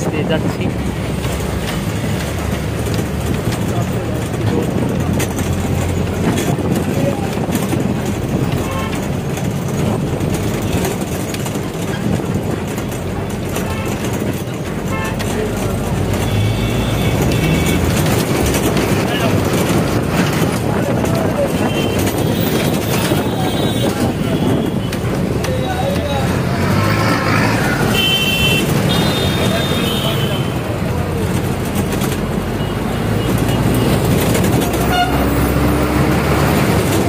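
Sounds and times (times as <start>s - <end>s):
city road traffic: 0.0s - 37.0s
voices: 12.7s - 37.0s.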